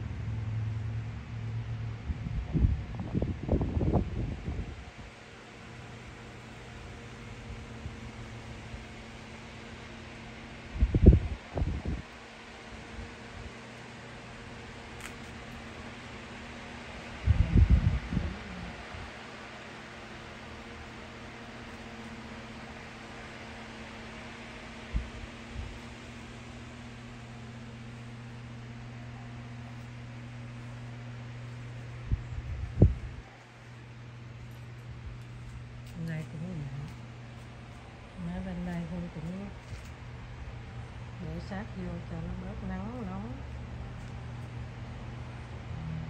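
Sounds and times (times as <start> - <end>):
electric fans humming: 0.0 - 46.0.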